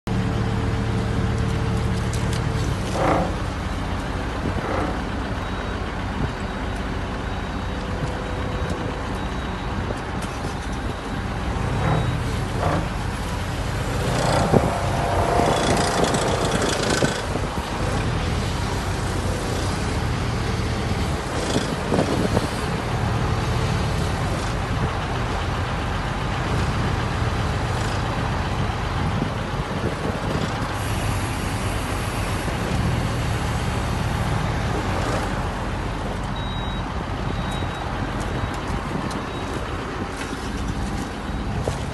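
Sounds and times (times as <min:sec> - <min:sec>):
loader diesel engine running: 0:00.1 - 0:41.9.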